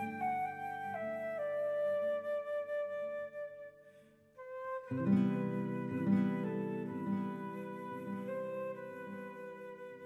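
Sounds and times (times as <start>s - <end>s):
flute notes: 0.0s - 10.0s.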